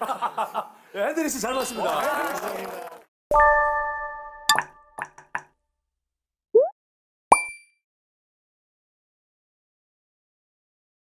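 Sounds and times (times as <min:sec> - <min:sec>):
sharp pop with ringing ping: 0:07.3 - 0:07.8.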